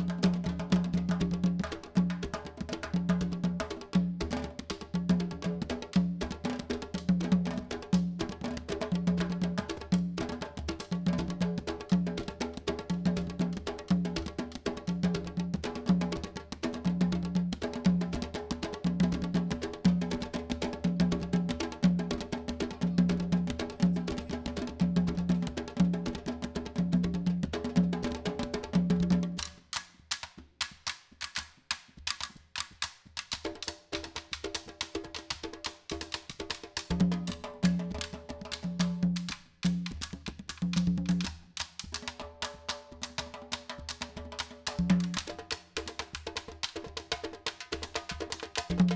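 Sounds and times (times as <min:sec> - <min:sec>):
wooden stick clicks: 0:29.4 - 0:33.4.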